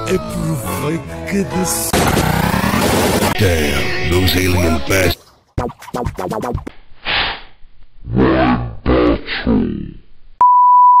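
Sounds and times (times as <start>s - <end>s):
garbled voice: 0.0s - 7.3s, 8.0s - 10.1s.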